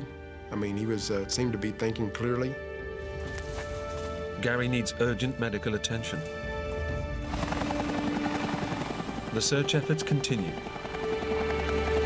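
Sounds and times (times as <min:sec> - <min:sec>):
background music: 0:00.0 - 0:12.0
helicopter rotor turning: 0:06.3 - 0:12.0.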